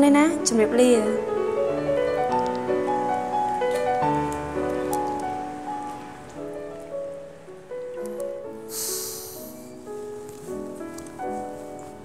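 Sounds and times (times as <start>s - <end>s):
slow piano melody: 0.0s - 12.0s.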